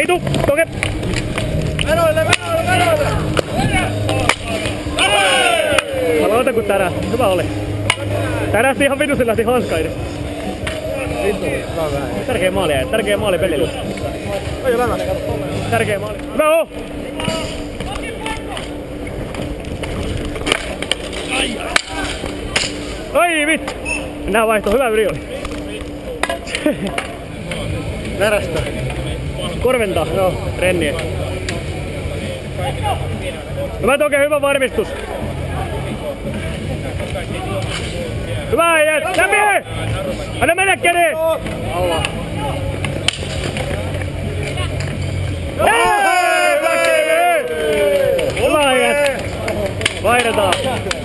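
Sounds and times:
distant shouts: 4.8 - 6.3, 45.6 - 49.1.

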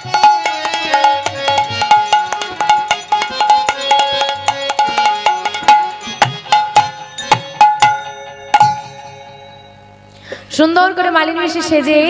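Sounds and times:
hand drum stroke ringing: 0.0 - 10.1.

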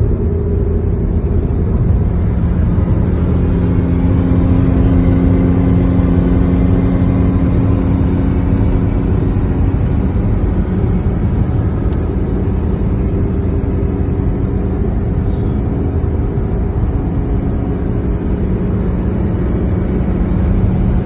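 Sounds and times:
low engine drone: 0.0 - 21.0
road noise inside car: 0.0 - 21.0.

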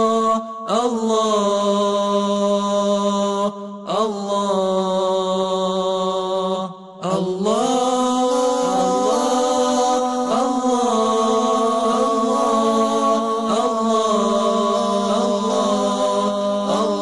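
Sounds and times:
vocal chant: 0.0 - 17.0.

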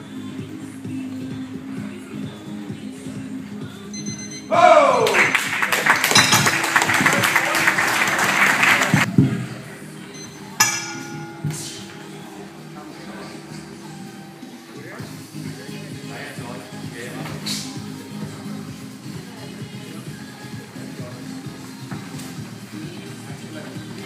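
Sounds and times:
background music: 0.0 - 24.0
crowd shouting and cheering: 4.5 - 9.2.

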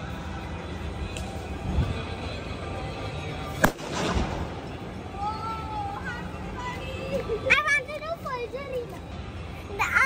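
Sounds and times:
firecracker bang with echo: 3.6 - 4.6.

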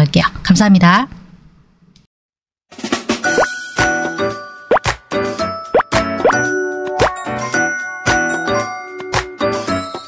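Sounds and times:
bright music jingle: 3.2 - 10.0
cartoon plop sound effects: 4.7 - 5.0.

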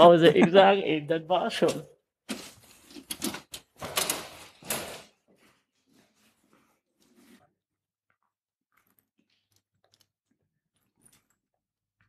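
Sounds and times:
soft rustle: 5.3 - 7.6.

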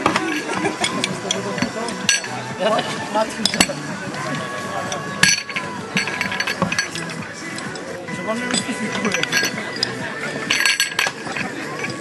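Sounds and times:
metal couplings clinking: 0.0 - 12.0.

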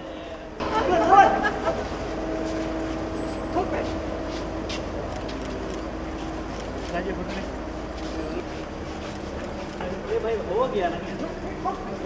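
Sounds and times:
car idling: 0.0 - 12.0.

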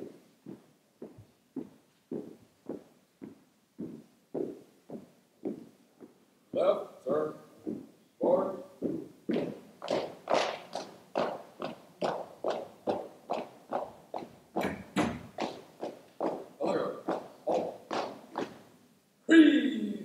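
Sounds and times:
marching footsteps echoing: 0.0 - 18.8.

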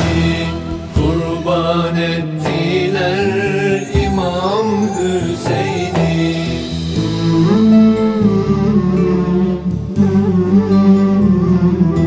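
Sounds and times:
man singing long wavering notes: 0.4 - 10.9
low chanted drone: 2.7 - 10.2.

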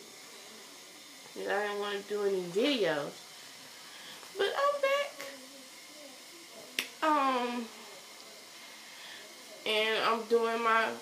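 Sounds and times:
room hiss: 0.0 - 11.0.

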